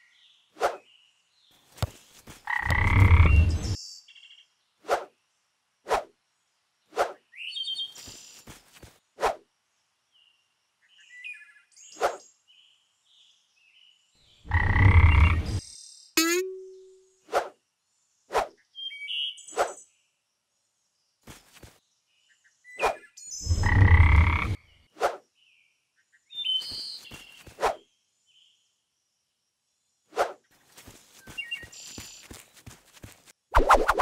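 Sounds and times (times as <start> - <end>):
bird chirps: 13.8 - 17.2, 18.6 - 19.9, 25.4 - 27.5.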